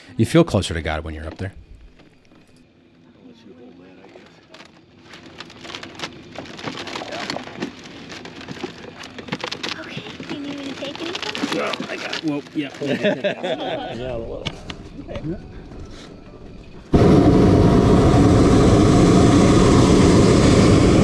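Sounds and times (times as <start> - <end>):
wicker basket creaking and crackling: 4.0 - 13.1.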